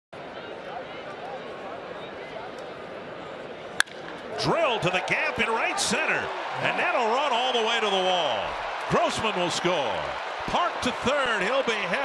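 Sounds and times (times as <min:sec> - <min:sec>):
bat cracking baseball: 0:03.8 - 0:04.3.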